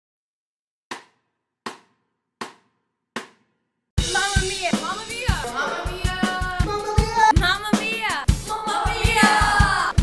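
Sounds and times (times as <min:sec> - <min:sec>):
percussion hits count-in: 0:00.9 - 0:10.0
music: 0:04.0 - 0:10.0.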